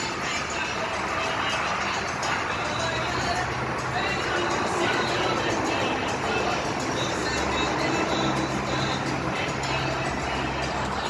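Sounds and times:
background music: 0.0 - 11.0
road traffic noise: 0.0 - 11.0.

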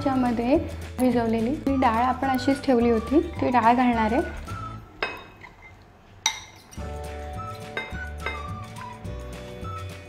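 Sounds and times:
soft background music: 0.0 - 5.5, 6.5 - 10.0
glassware clinking: 5.0 - 6.9, 7.7 - 8.6.

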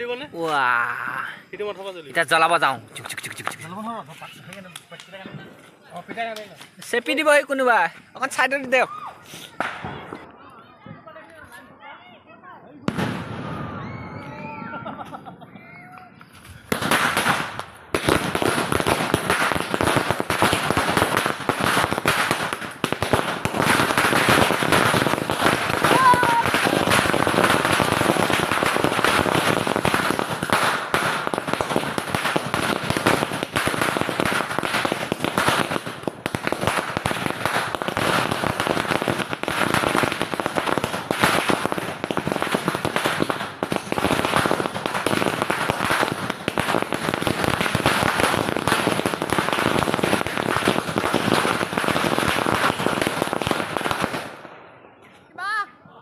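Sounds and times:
firecrackers crackling: 0.0 - 55.7.

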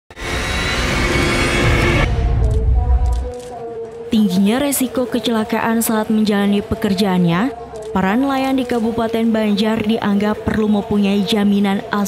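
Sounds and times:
loud music sting with heavy bass: 0.1 - 3.0.

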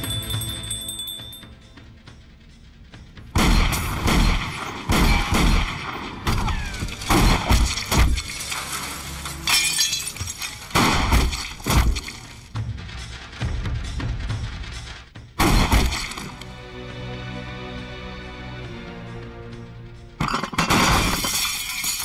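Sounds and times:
film music score: 0.0 - 21.4
pistol shots: 3.4 - 6.4
glass shattering: 6.4 - 12.4, 20.2 - 22.0.

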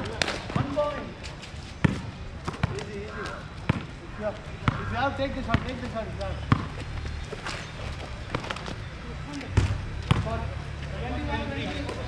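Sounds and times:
basketball bouncing on hard court: 1.8 - 2.9, 5.5 - 6.9.

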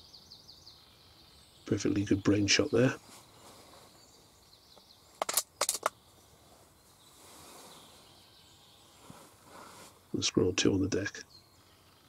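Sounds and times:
faint outdoor background: 0.0 - 12.0
sharp clicks: 5.2 - 6.0.

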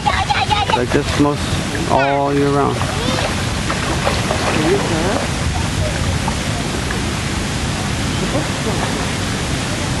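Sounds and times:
faint voices: 0.0 - 10.0
wind buffeting microphone: 0.0 - 10.0.

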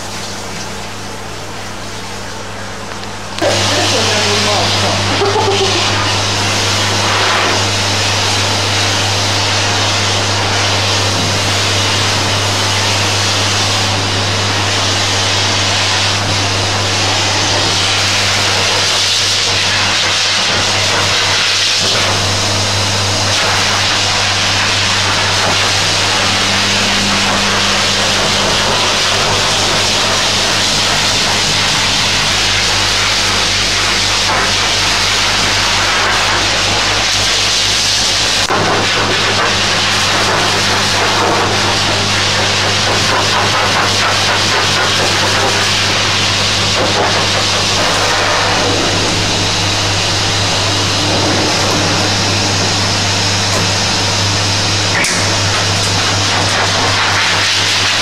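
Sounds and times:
motor hum: 0.0 - 37.0, 46.3 - 56.7
pet blower air rush: 3.4 - 58.0.

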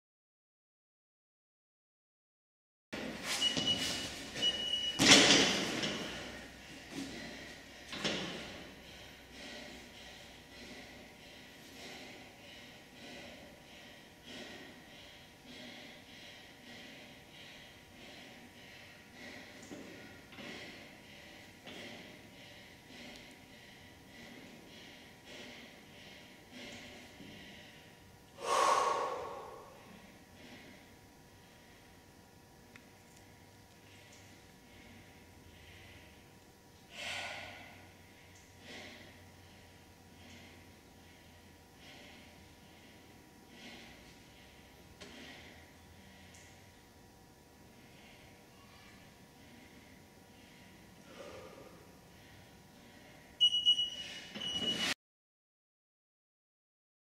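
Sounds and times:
person breathing hard: 5.3 - 32.1, 33.8 - 53.4
loud forceful exhale: 28.4 - 29.9, 36.9 - 37.9, 51.0 - 51.9
interval timer beeping: 53.4 - 54.7.

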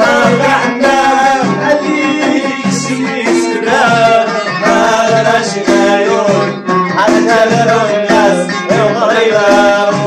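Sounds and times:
hand-struck frame drums: 0.0 - 10.0
plucked lute: 0.0 - 10.0.

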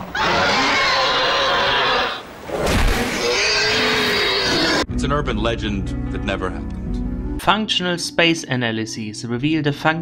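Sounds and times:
dinosaur screaming: 0.0 - 2.2, 3.0 - 4.9.

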